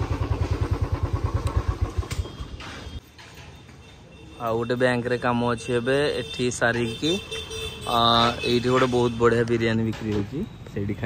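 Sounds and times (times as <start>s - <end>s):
motorcycle engine running: 0.0s - 3.0s.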